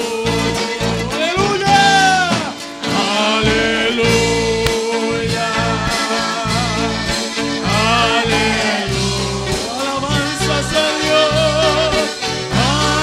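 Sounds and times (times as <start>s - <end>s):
instrumental accompaniment: 0.0s - 13.0s
person singing worship song: 0.0s - 13.0s
repeating bass line: 0.0s - 13.0s.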